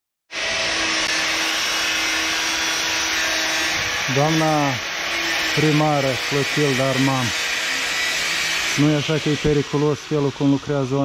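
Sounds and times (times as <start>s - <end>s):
angle grinder running: 0.3s - 11.0s.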